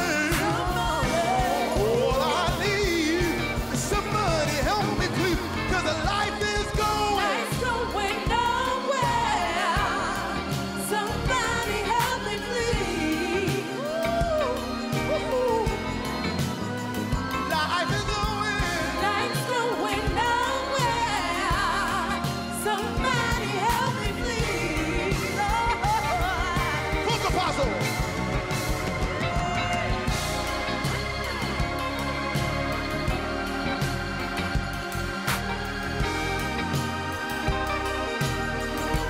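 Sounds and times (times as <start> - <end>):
drum beat: 0.0 - 8.4, 23.0 - 39.0
bass: 0.0 - 39.0
funk band playing: 0.0 - 39.0
gospel-style lead vocal: 0.0 - 39.0
group singers: 0.0 - 39.0.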